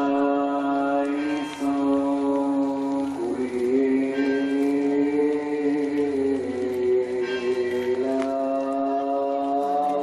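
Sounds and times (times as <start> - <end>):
voices chanting one long note: 0.0 - 10.0.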